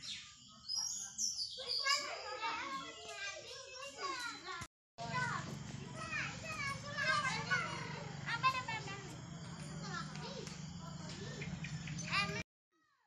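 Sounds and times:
children shouting and chattering: 0.0 - 12.4.

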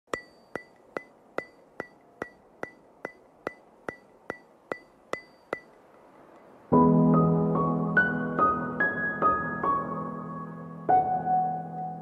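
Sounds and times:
sharp ringing ticks: 0.1 - 6.6.

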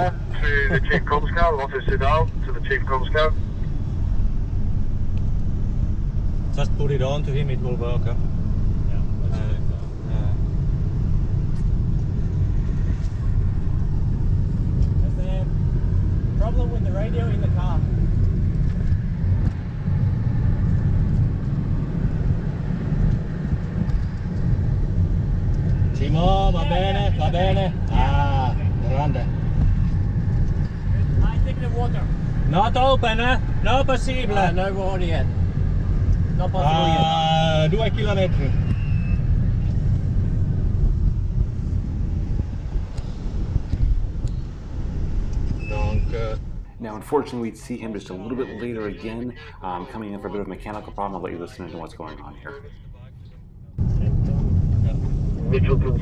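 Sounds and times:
wind rushing through car window: 0.0 - 47.2, 52.9 - 56.0
tyres rumbling on road: 0.0 - 51.9, 53.6 - 56.0.

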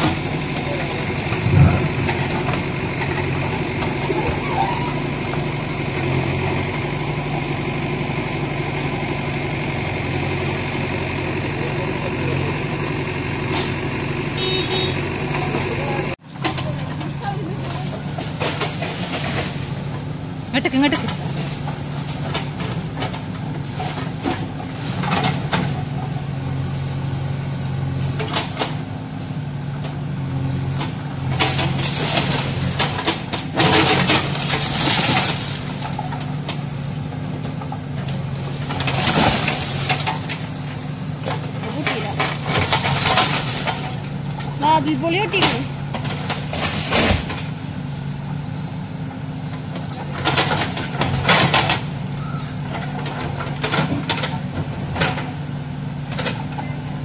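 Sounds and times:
heavy engine running: 0.0 - 57.0.

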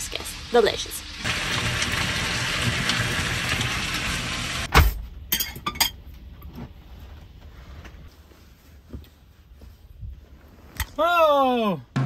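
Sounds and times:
food sizzling in a frying pan: 0.0 - 4.7
kitchenware clinking: 5.3 - 6.0.

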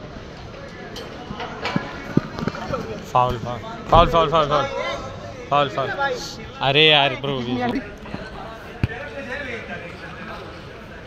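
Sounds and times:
faint voices in a hall: 0.0 - 11.0
football kick thud: 8.1 - 9.1.

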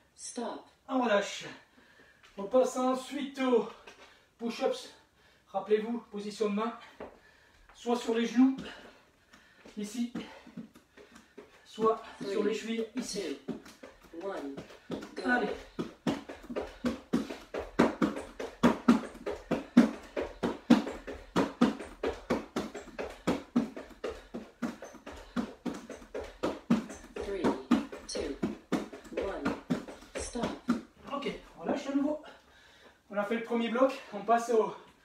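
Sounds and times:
heavy breathing: 8.6 - 12.3, 13.7 - 30.5, 32.2 - 33.1.

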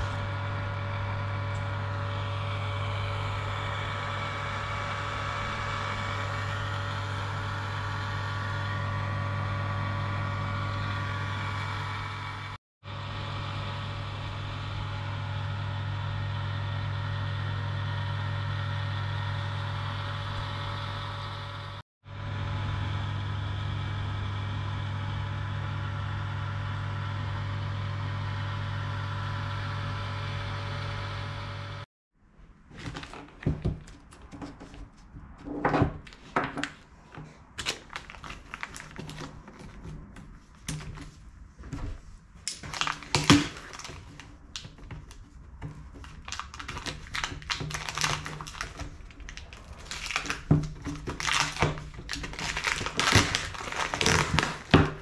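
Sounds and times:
vacuum pump humming: 0.0 - 31.9, 42.6 - 55.0.

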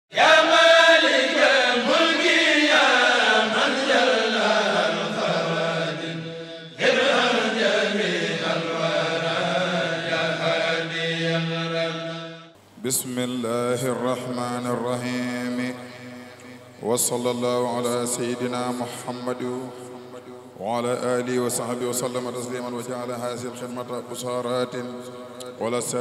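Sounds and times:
voices chanting: 0.1 - 6.2, 6.8 - 11.7.

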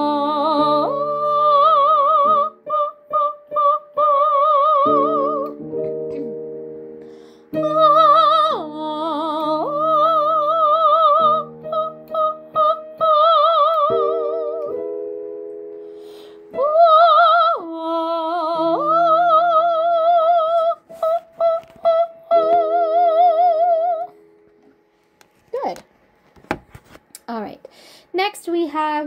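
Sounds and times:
woman singing vocal warm-up: 0.0 - 6.3, 7.5 - 14.9, 16.4 - 24.2
held accompanying chords: 0.0 - 25.2.

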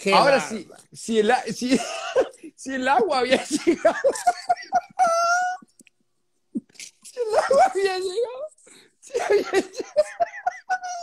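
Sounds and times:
man laughing hard: 3.4 - 5.6, 7.2 - 8.2, 9.1 - 11.0.

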